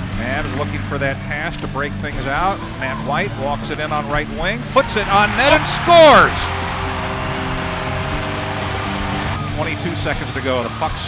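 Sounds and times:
arena music sustained chords: 0:02.1 - 0:11.0
crowd cheering: 0:04.7 - 0:10.9.

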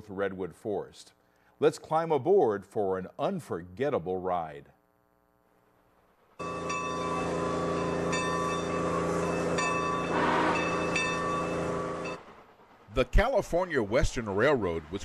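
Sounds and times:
steam locomotive whistle: 0:06.4 - 0:12.4.

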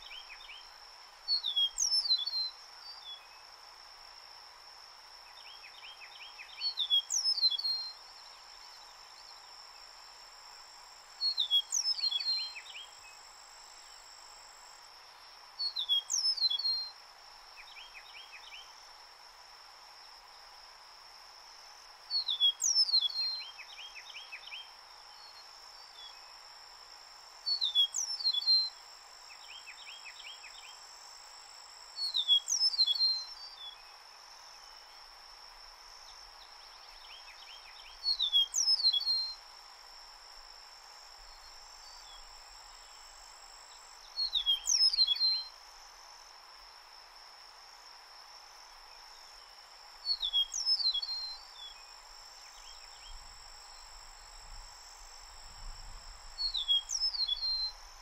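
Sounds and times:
bird singing whistled song: 0:01.3 - 0:03.3, 0:05.8 - 0:08.0, 0:11.2 - 0:12.9, 0:15.6 - 0:16.9, 0:22.1 - 0:25.4, 0:27.5 - 0:28.8, 0:32.0 - 0:33.8, 0:37.0 - 0:39.4, 0:44.1 - 0:45.6, 0:50.0 - 0:51.9, 0:56.4 - 0:57.8.

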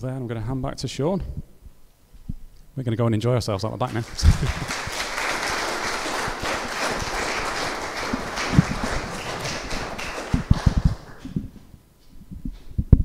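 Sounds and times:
crowd clapping: 0:03.9 - 0:11.6.

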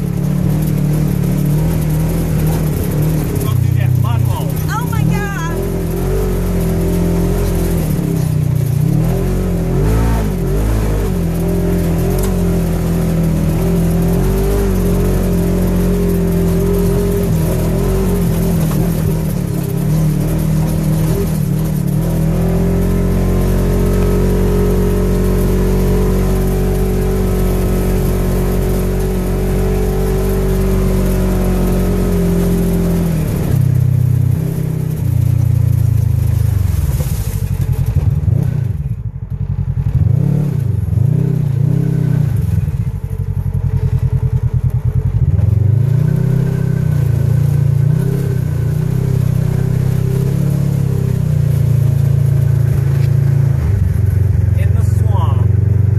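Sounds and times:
utility vehicle engine revving: 0:00.0 - 0:55.9.

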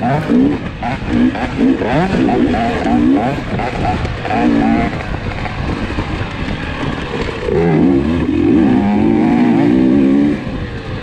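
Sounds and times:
dirt bike engine revving: 0:00.0 - 0:11.0.

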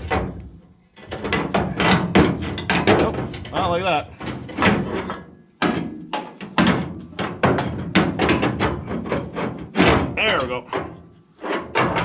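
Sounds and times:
metal clanks and knocks: 0:00.0 - 0:12.0.

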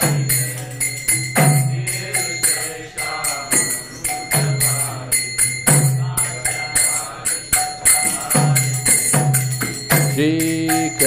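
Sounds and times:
drum beating steady rhythm: 0:00.0 - 0:11.0
hand cymbals ringing: 0:00.0 - 0:11.0
voices chanting: 0:00.0 - 0:11.0.

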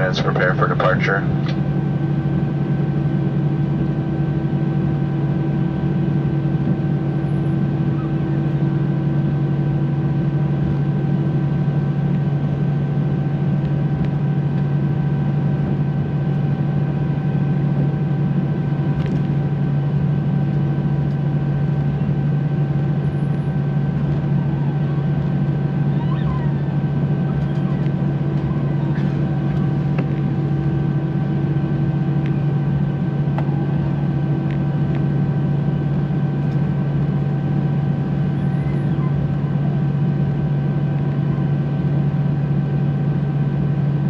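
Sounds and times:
airplane cabin engine hum: 0:00.0 - 0:44.0.

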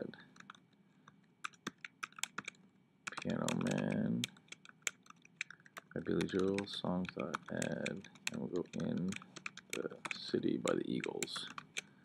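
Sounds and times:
computer keyboard typing: 0:00.3 - 0:00.6, 0:01.4 - 0:11.9.

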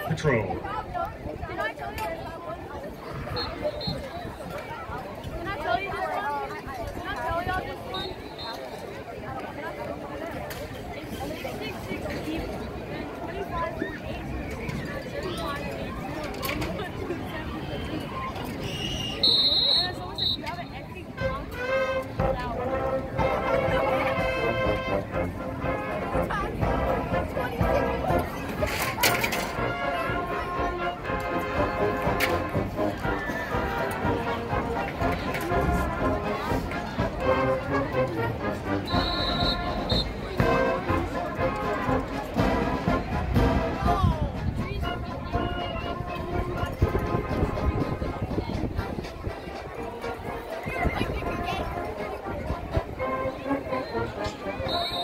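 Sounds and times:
crowd chatter: 0:00.0 - 0:55.0
marching band playing: 0:21.1 - 0:55.0.

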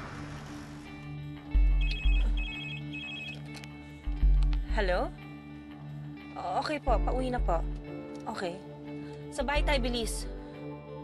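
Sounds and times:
low background music: 0:00.0 - 0:11.0
phone ringtone trill: 0:01.8 - 0:03.4.

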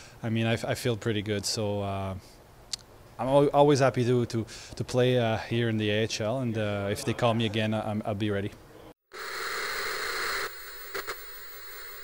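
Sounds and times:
television static hiss: 0:09.1 - 0:12.0
brief crackles: 0:10.8 - 0:11.3.

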